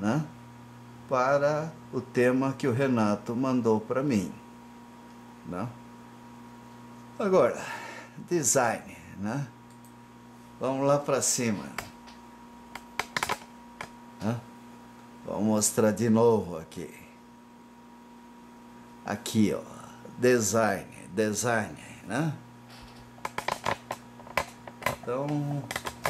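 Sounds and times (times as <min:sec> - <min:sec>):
tripod clicking and knocking: 0:23.2 - 0:25.0.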